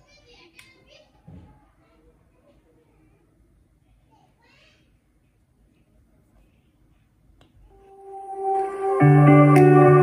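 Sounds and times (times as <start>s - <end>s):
music from speaker: 7.8s - 10.0s.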